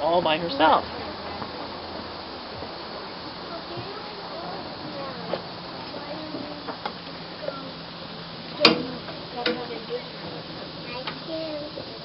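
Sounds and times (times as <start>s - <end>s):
faint voices: 0.0s - 12.0s.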